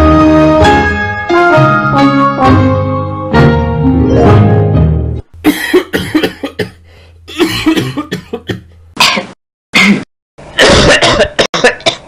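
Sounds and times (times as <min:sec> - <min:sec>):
person coughing: 0:05.4 - 0:12.0.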